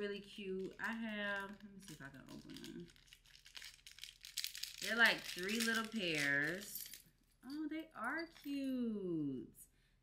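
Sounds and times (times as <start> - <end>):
person speaking: 0.0 - 3.0, 4.7 - 9.6
wrapping crinkling and tearing: 0.4 - 7.0.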